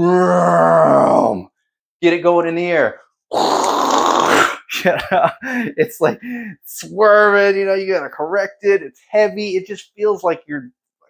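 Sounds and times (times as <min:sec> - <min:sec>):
speech: 0:02.0 - 0:03.0, 0:05.7 - 0:10.7.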